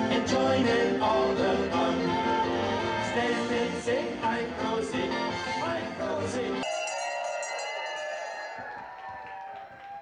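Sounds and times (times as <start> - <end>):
crowd clapping and cheering: 6.7 - 10.0.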